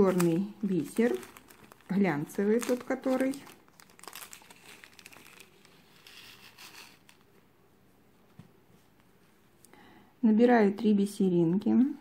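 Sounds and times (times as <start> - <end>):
plastic bag crinkling: 0.0 - 7.3.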